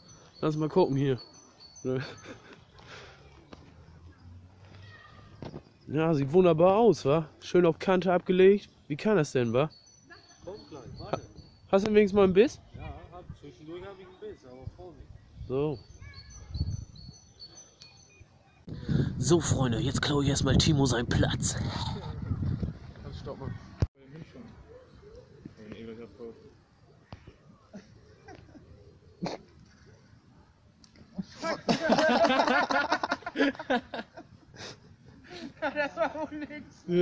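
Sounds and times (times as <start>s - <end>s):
songbird singing: 0.0s - 21.4s, 22.2s - 37.0s
faint bird chirps: 8.6s - 18.7s
man speaking: 19.2s - 22.0s.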